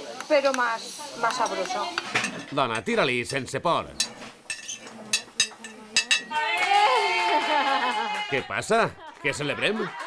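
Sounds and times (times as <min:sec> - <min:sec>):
spoon clinking on plate: 0:04.0 - 0:06.3.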